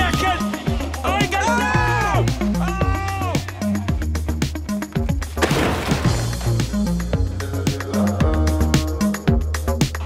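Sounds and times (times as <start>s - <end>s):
music with beat and bass: 0.0s - 5.4s, 6.2s - 10.0s
crash into metal dumpster: 5.4s - 6.4s.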